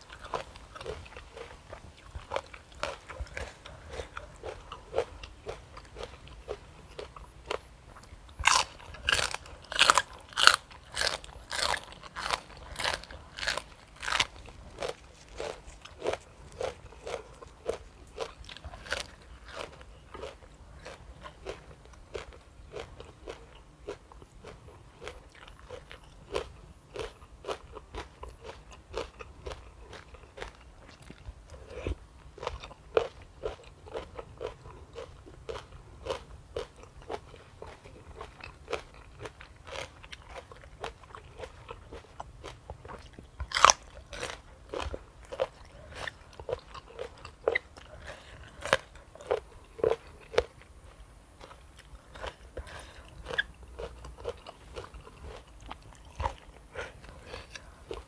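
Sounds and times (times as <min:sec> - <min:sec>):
crunchy chewing: 0:00.0 - 0:58.0.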